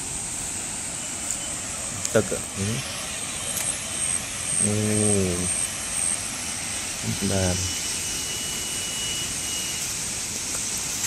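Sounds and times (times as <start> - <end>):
river flowing over rocks: 0.0 - 7.1, 7.7 - 11.0.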